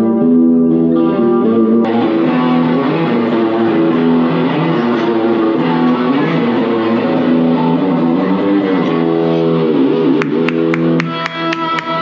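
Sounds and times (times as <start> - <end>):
live band with electric guitar: 0.0 - 12.0.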